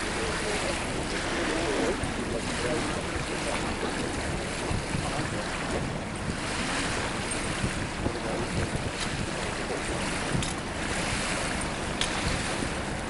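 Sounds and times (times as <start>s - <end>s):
small waves washing: 0.0s - 13.0s
wind buffeting microphone: 0.0s - 13.0s.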